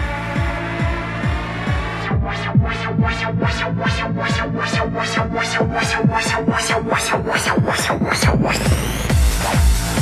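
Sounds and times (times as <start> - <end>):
electronic dance music build-up: 0.0 - 10.0.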